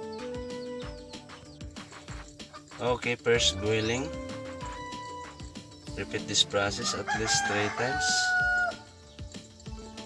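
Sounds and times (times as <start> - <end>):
faint background music: 0.0 - 10.0
rooster crowing: 6.8 - 8.9.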